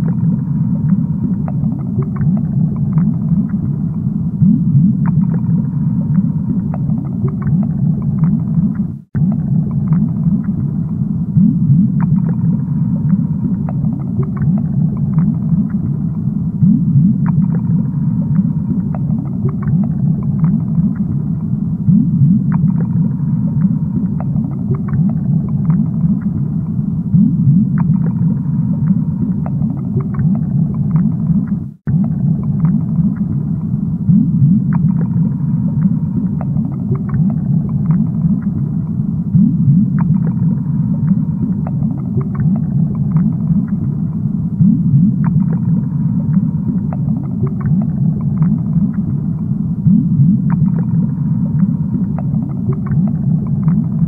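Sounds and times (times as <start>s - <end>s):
aquarium water rumble: 0.0s - 54.0s.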